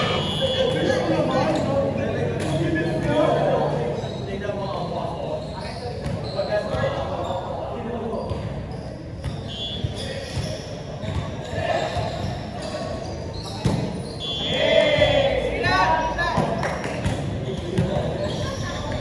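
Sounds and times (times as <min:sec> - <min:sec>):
players talking and calling out: 0:00.0 - 0:19.0.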